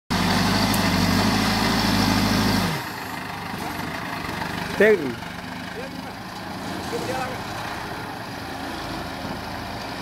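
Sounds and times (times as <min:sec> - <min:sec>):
diesel engine working hard: 0:00.1 - 0:10.0.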